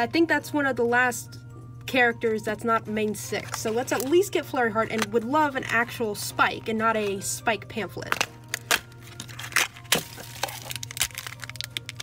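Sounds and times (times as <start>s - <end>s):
packaging crinkling: 8.1s - 12.0s.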